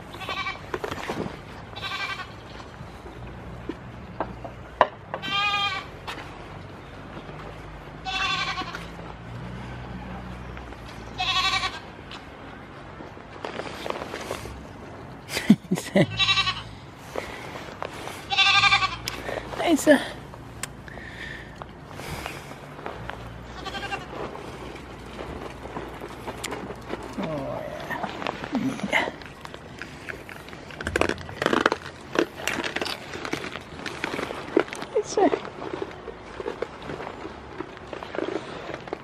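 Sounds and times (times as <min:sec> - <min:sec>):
goats bleating: 0:00.1 - 0:00.6, 0:01.8 - 0:02.4, 0:05.2 - 0:05.9, 0:08.0 - 0:08.9, 0:11.1 - 0:11.9, 0:16.0 - 0:16.7, 0:18.3 - 0:19.2, 0:23.4 - 0:24.2.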